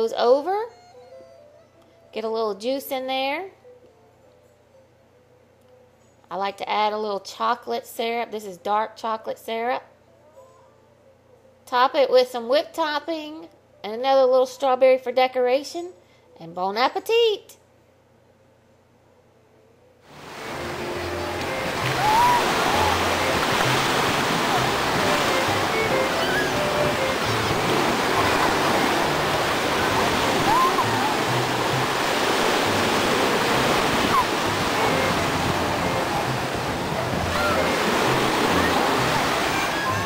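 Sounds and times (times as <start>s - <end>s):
jazz music: 20.1s - 40.0s
ocean surf washing onto beach: 20.1s - 40.0s.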